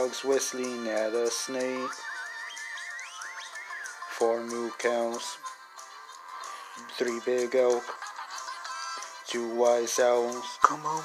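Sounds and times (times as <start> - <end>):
soft backing music: 0.0 - 11.0
wavering gliding whistles: 1.7 - 4.6.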